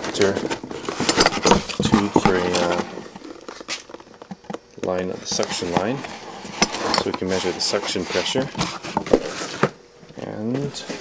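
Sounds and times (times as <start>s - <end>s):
faint rustling in cardboard box: 5.1s - 11.0s.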